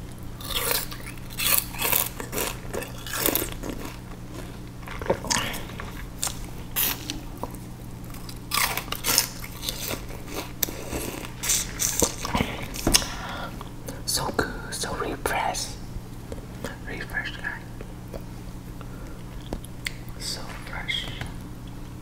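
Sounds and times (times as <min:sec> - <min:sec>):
chewing crunchy sugarcane: 0:00.0 - 0:13.7.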